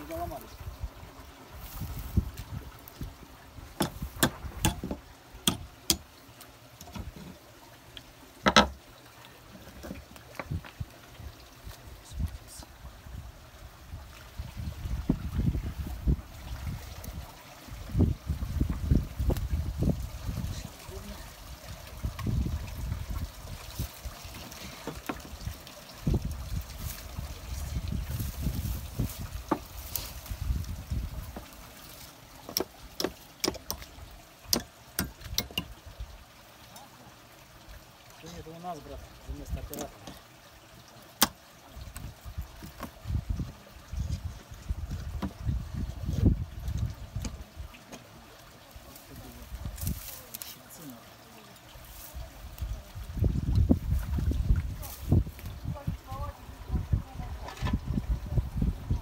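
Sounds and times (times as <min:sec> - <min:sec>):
faint water trickle: 0:00.0 - 0:59.0
knocks on wooden planks: 0:08.4 - 0:08.8.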